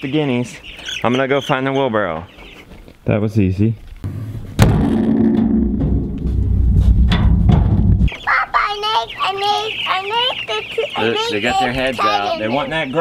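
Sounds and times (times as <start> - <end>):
chicks peeping: 0.0 - 3.8, 8.0 - 13.0
wheelbarrow bang: 4.1 - 8.1.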